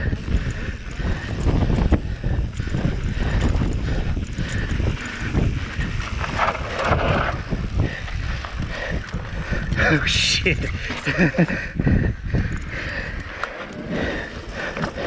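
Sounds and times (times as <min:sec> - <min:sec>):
bike knocks and rattles: 0:00.0 - 0:09.8
wind buffeting microphone: 0:00.0 - 0:15.0
tyres rolling over dirt and stones: 0:00.2 - 0:11.6.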